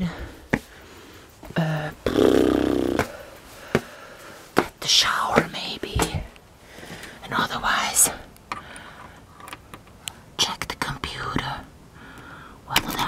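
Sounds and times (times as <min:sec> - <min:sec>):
loud buzzing tone: 0:02.0 - 0:03.0
close whispering: 0:04.8 - 0:06.4, 0:07.2 - 0:08.3, 0:10.4 - 0:11.7.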